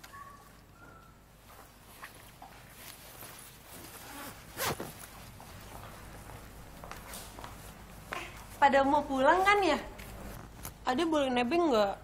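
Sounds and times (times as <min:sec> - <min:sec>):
fabric rustling: 0:01.4 - 0:10.9
jacket zipper pulled: 0:03.8 - 0:05.1.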